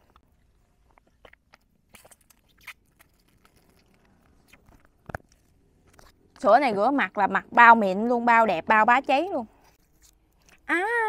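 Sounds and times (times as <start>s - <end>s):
mouth clicks and sips: 0.8s - 4.9s.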